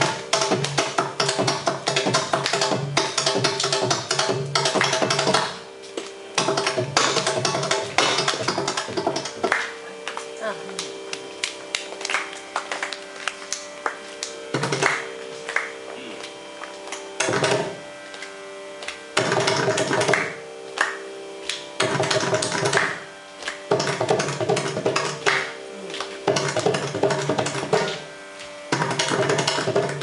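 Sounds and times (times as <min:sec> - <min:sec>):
steady pitch drone: 0:00.0 - 0:30.0.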